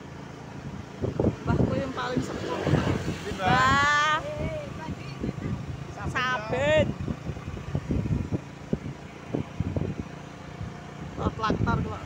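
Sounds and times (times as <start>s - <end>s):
small motorcycle engine running: 0.0s - 12.0s
wind thumps on microphone: 1.0s - 10.8s.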